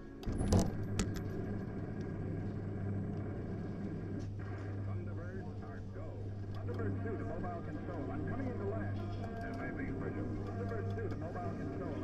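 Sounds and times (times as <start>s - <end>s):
faint voices: 4.4s - 12.0s.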